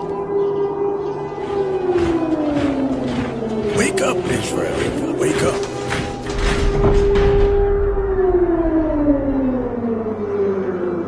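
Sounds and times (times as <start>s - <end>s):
siren-like wail sliding down: 0.0s - 11.0s
low rumble: 5.6s - 10.5s.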